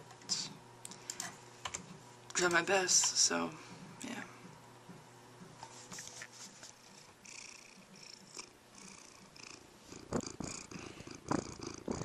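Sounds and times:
rustling or sniffing noises: 5.5s - 7.0s
cat purring: 6.7s - 12.0s.

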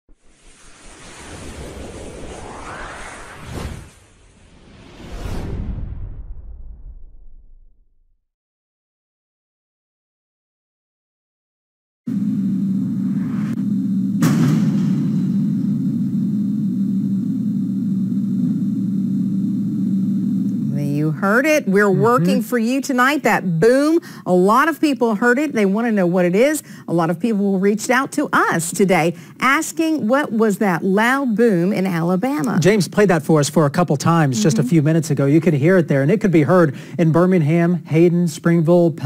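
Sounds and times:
rushing whoosh: 0.1s - 7.3s
low rumble: 0.3s - 8.2s
sharp loud boom: 14.2s - 15.7s.

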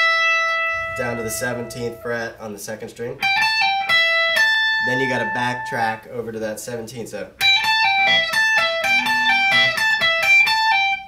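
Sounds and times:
electric guitar lead lick: 0.0s - 5.9s, 7.4s - 11.0s.

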